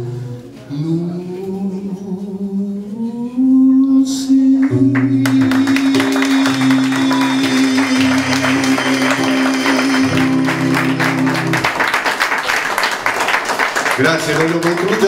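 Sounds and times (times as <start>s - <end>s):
man singing long note: 0.0s - 11.4s
classical guitar: 4.6s - 11.8s
audience applause: 4.6s - 15.0s.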